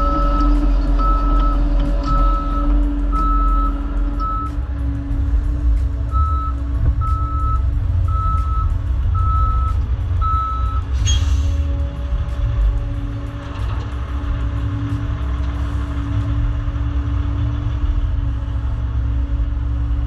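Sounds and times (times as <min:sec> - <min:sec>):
heavy equipment rumbling: 0:00.0 - 0:20.0
backup alarm beeping: 0:06.1 - 0:10.9.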